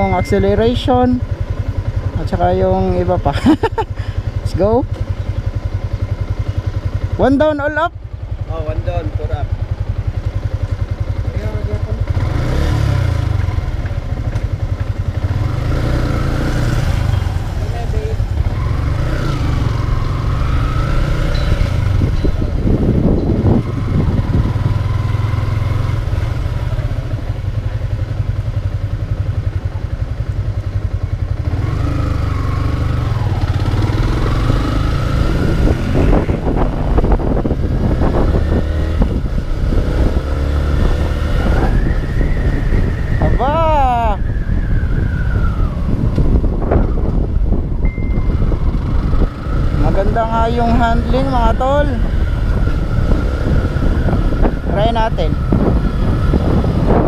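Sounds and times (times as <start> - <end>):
motorcycle engine accelerating: 0.0 - 57.0
wind rumble on microphone: 8.5 - 28.4, 31.2 - 57.0.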